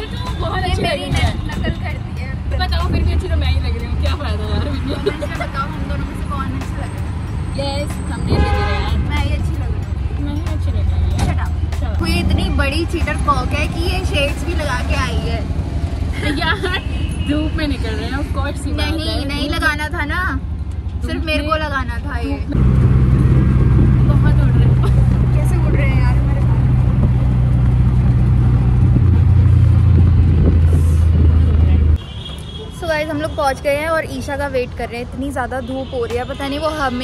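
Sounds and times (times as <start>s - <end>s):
auto-rickshaw engine: 0.0s - 37.0s
road rumble: 0.0s - 37.0s
wind blowing: 22.5s - 32.0s.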